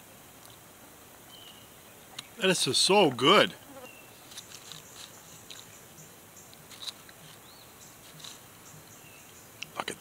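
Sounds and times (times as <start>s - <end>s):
metal fork scraping in foil pouch: 4.2s - 5.7s.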